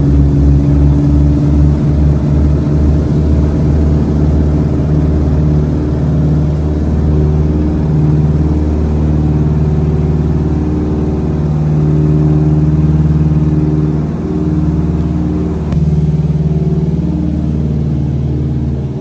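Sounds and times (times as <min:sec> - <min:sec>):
aircraft engines droning: 0:00.0 - 0:19.0.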